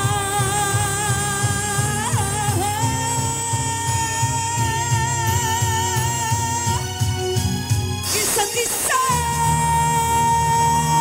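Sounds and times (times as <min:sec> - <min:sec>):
amplified backing track: 0:00.0 - 0:11.0.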